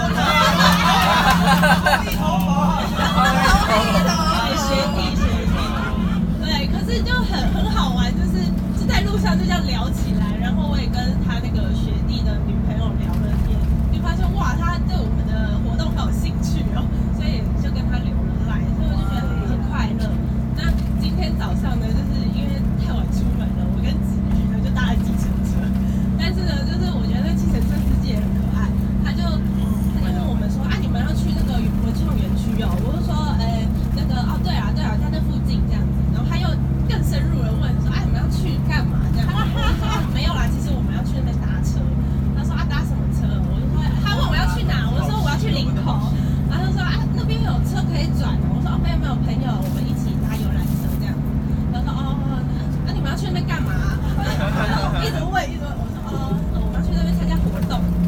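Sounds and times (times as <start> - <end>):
coach engine low drone: 0.0 - 58.0
woman talking into a microphone: 0.0 - 58.0.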